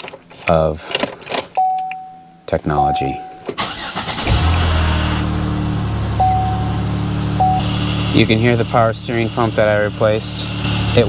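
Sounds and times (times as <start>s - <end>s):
dashboard warning chime: 1.6s - 3.6s, 6.2s - 6.8s, 7.4s - 7.7s
car engine cranking: 3.4s - 9.9s
car engine idling: 3.6s - 11.0s.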